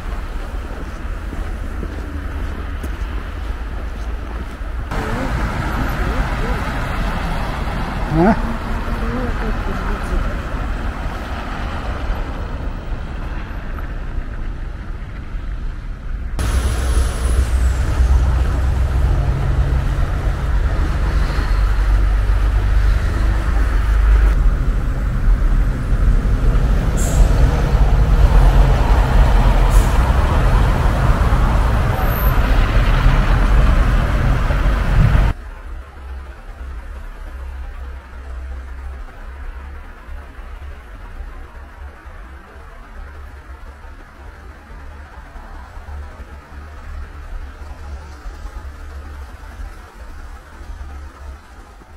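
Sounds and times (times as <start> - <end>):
cars driving past: 0.0 - 15.5, 16.4 - 51.9.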